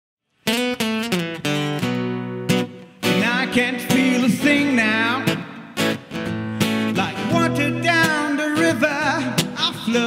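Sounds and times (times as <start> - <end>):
acoustic guitar strummed: 0.3 - 10.0
man singing: 3.0 - 6.0, 6.6 - 10.0.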